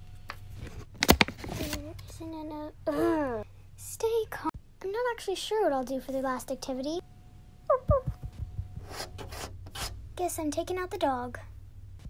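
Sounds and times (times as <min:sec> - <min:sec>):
low hum: 0:06.7 - 0:12.0
dull thumps: 0:07.8 - 0:09.3
brushing scrapes: 0:08.8 - 0:10.0.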